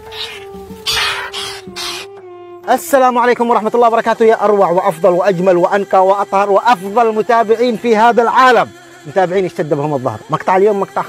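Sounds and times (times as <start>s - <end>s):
caged birds harsh rasping calls: 0.0s - 2.2s.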